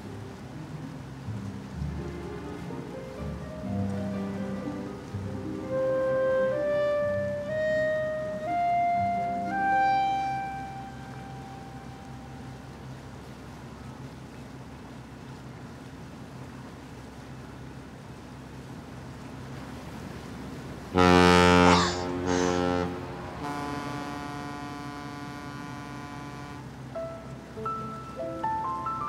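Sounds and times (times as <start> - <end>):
music with plucked notes: 0.0 - 12.0
boat engine drone: 0.0 - 29.0
ship's horn blasts: 0.4 - 13.4, 20.8 - 27.9.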